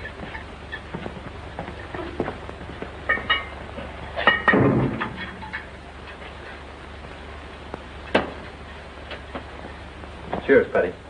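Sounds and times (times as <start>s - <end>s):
metallic clanks: 3.0s - 6.2s.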